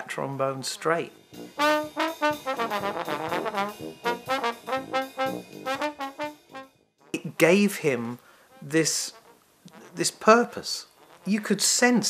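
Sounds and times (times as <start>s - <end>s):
brass band: 0.6s - 12.0s
trombone playing quick short notes: 1.4s - 7.4s, 8.0s - 11.5s.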